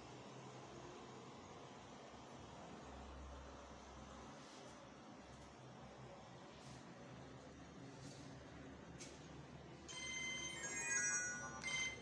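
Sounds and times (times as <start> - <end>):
electronic phone ringtone: 9.9 - 12.0.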